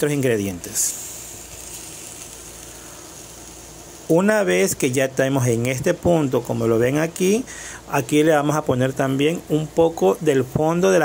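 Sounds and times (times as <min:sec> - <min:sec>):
vegetables sizzling in a pan: 0:00.0 - 0:11.0.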